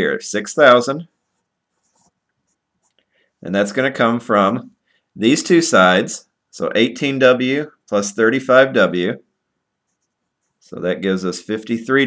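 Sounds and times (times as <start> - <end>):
marker scratching on paper: 1.2 - 3.0, 9.8 - 10.8.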